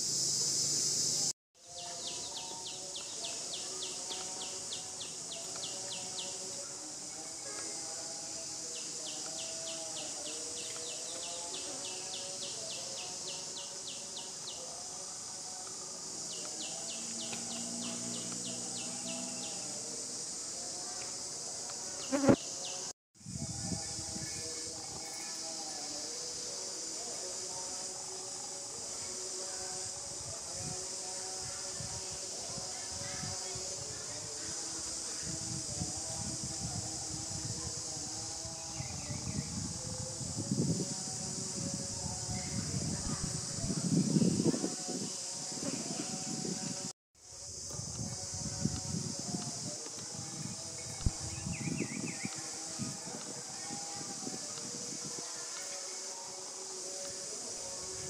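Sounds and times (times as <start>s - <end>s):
insects buzzing: 0.0s - 58.0s.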